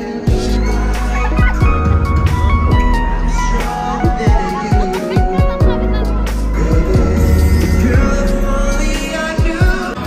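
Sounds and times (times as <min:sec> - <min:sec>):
live pop concert music: 0:00.0 - 0:10.0
kick drum beat: 0:04.0 - 0:06.0.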